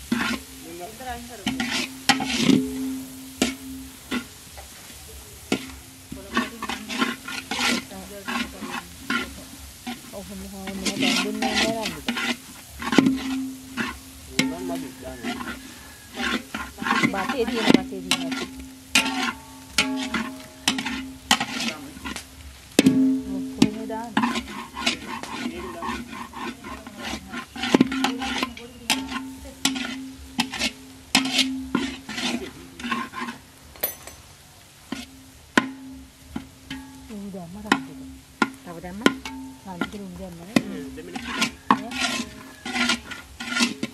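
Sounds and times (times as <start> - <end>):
utensil scraping a pan: 0.0 - 34.0, 34.8 - 43.9
food sizzling: 0.0 - 43.9.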